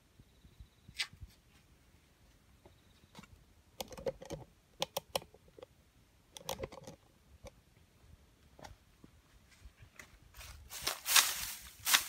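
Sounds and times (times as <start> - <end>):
dry grass crackling and snapping: 10.3 - 12.0.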